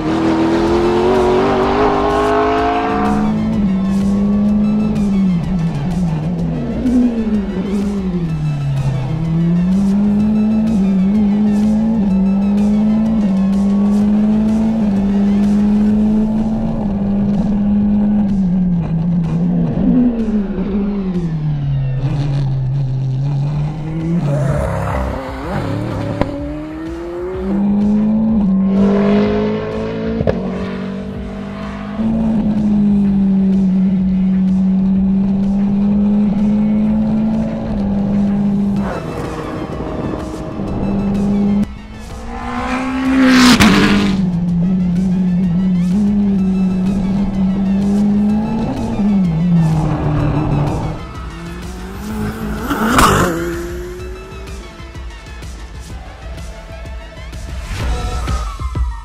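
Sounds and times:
racing car engine revving: 0.0 - 58.7.

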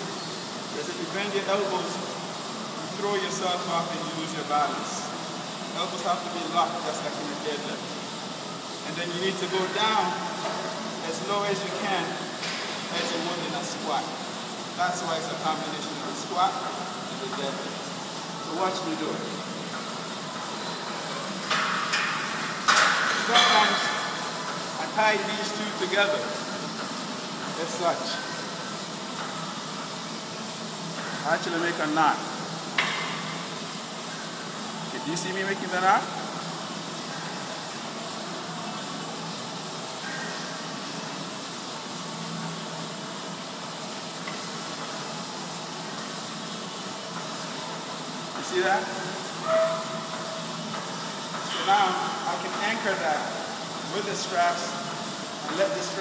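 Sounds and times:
ventilation hiss: 0.0 - 56.0.

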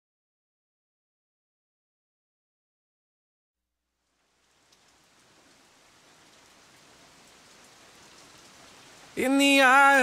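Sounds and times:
rain hiss: 3.8 - 10.0
raindrop ticks: 4.0 - 10.0.

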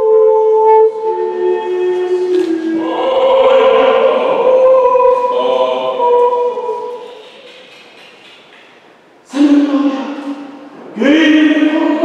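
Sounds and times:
choir singing long notes: 0.0 - 7.6.

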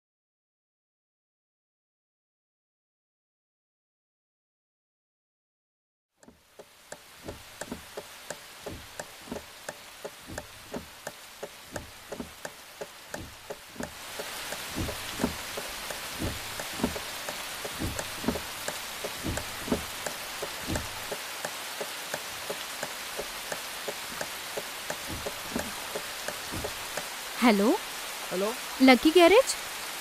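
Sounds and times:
heavy rain hissing: 6.2 - 30.0
raindrops dripping: 6.2 - 30.0.

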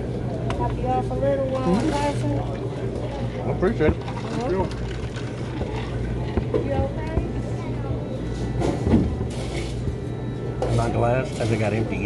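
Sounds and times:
murmur of diners talking: 0.0 - 12.0
steady low hum: 0.0 - 12.0.

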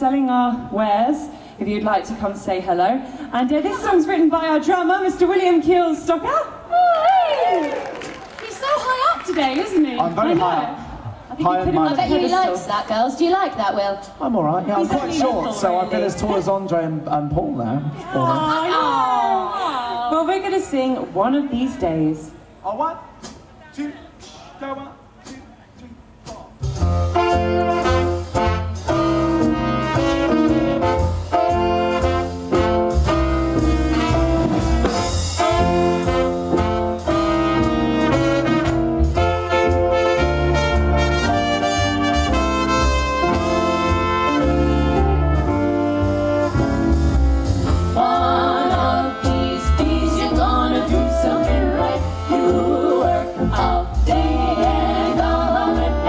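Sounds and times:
swing band playing: 7.9 - 17.5, 20.2 - 56.0
trumpet playing lead: 27.0 - 56.0
women singing close harmony: 47.9 - 56.0.

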